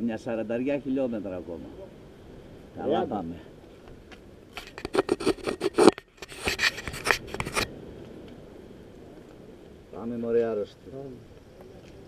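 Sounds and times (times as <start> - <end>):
handling noise on microphone: 3.9 - 7.8.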